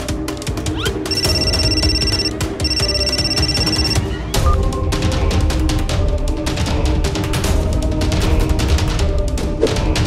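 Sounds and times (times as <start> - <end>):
dramatic background music: 0.0 - 10.0
phone ringing: 1.1 - 4.1.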